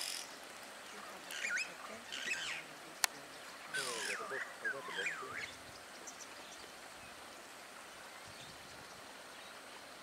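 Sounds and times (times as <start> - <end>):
bird whistling calls: 1.3 - 2.6, 3.7 - 6.2.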